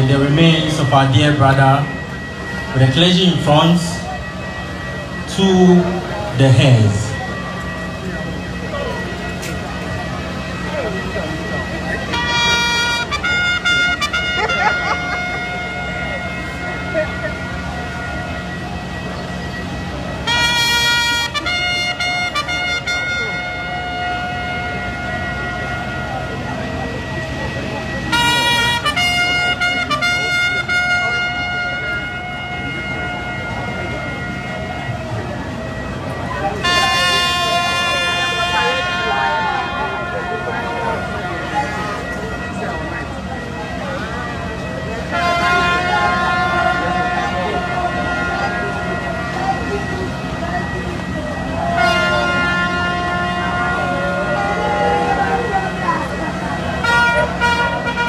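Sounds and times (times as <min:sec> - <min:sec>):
loud horn blasts: 0:00.0 - 0:58.0
low mechanical drone: 0:00.0 - 0:58.0.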